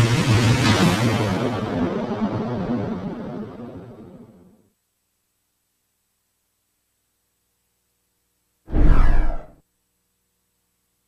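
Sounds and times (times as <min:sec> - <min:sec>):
whoosh with low rumble: 0:08.7 - 0:09.5.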